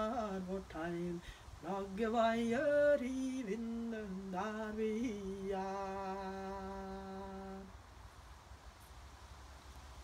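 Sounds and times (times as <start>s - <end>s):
woman singing a long low note: 0.0s - 7.7s.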